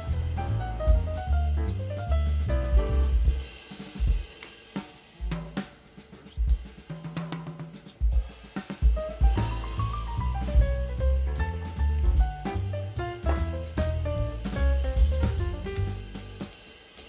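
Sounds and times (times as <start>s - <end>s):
instrumental music with drums and bass: 0.0s - 17.0s.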